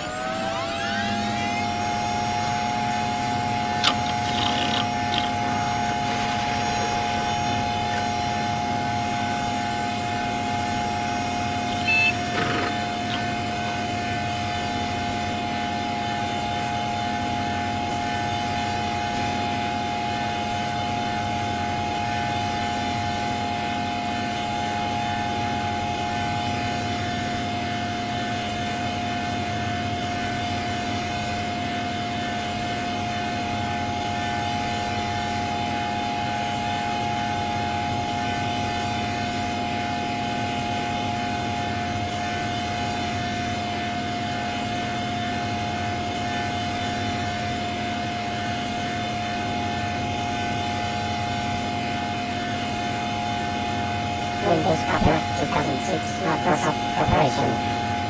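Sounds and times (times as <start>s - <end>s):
electronic drone: 0.0s - 58.0s.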